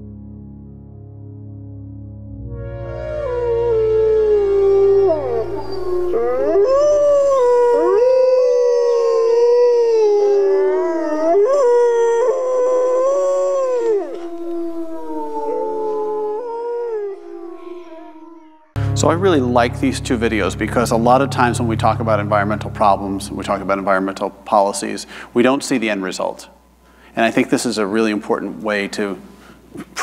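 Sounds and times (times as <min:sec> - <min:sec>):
low music drone: 0:00.0 - 0:07.7, 0:14.2 - 0:24.9
wolves howling: 0:02.9 - 0:18.8.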